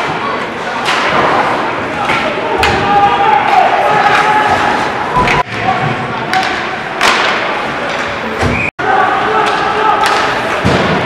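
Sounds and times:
ice rink noise: 0:00.0 - 0:11.0.

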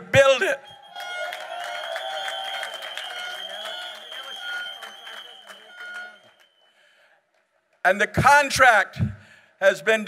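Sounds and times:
crowd clapping and cheering: 0:00.7 - 0:06.8.

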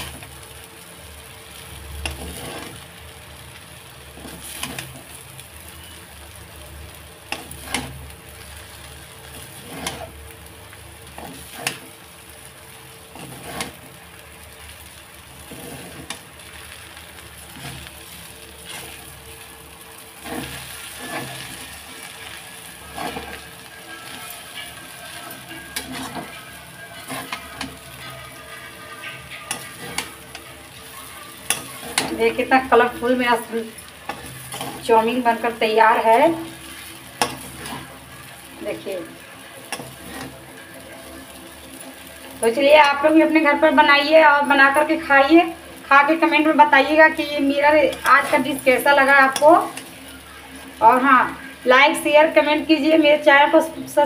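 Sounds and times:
low steady sizzle: 0:00.0 - 0:54.0
spatula scraping and knocking pan: 0:02.0 - 0:02.8, 0:04.1 - 0:05.2, 0:07.3 - 0:08.0, 0:09.2 - 0:10.2, 0:11.1 - 0:11.9, 0:13.1 - 0:13.9, 0:15.4 - 0:16.7, 0:17.4 - 0:19.1, 0:20.2 - 0:43.0.

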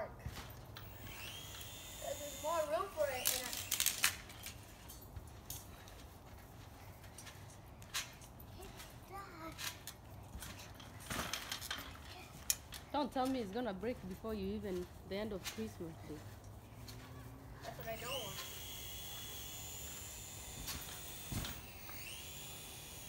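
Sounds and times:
small electric motor whining: 0:00.8 - 0:04.6, 0:17.7 - 0:23.0
child voices: 0:08.5 - 0:09.8, 0:12.0 - 0:12.4.

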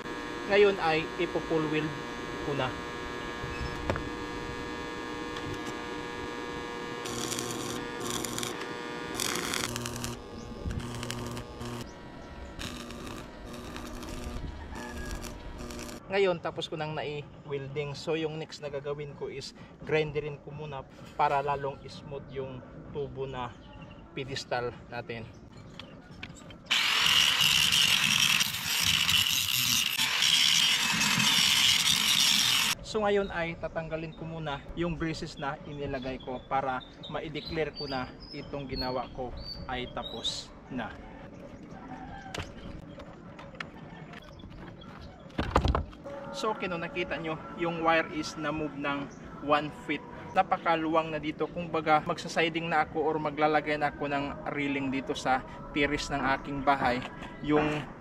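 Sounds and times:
angle grinder grinding steel: 0:00.0 - 0:16.1, 0:26.7 - 0:32.8
steady electrical hum: 0:00.0 - 0:16.1
welding arc crackling: 0:00.0 - 0:16.1, 0:26.7 - 0:32.8.

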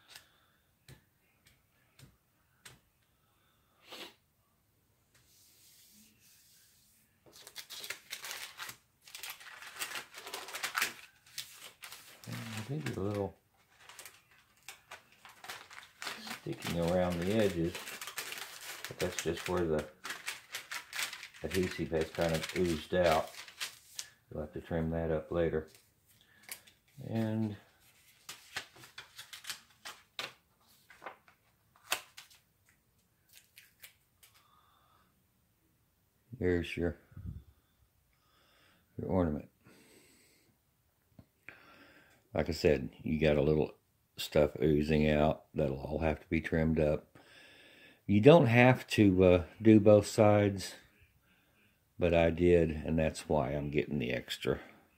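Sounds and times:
paper and plastic crinkling: 0:07.3 - 0:24.2, 0:25.6 - 0:32.4
man's voice: 0:16.3 - 0:17.9, 0:18.9 - 0:19.9, 0:21.4 - 0:23.3.

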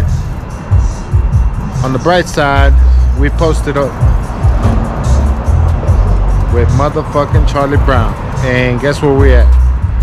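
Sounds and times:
ticking beat: 0:00.0 - 0:08.5
music with deep bass line: 0:00.0 - 0:10.0.

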